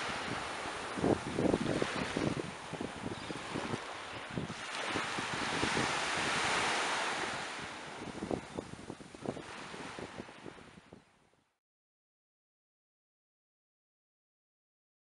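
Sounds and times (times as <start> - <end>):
sea surf washing on shore: 0.0 - 11.2
wind buffeting microphone: 0.0 - 11.2.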